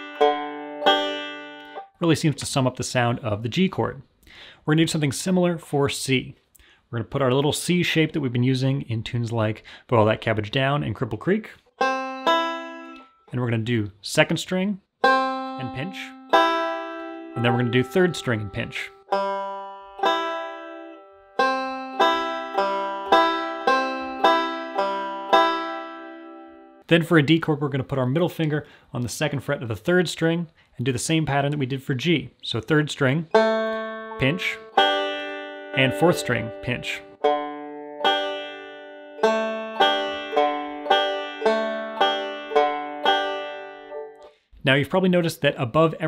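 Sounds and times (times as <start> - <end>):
banjo picking: 0.0 - 3.7, 9.2 - 30.3, 31.2 - 44.4.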